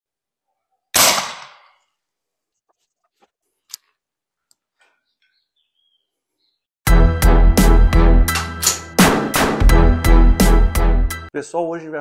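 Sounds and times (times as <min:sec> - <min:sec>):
air rifle shot: 0:01.0 - 0:01.8.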